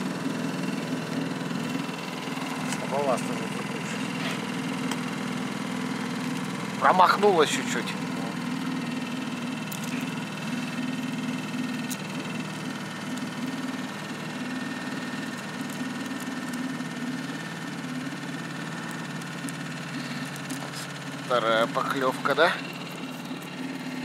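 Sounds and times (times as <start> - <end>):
outboard motor running: 0.0 - 24.0.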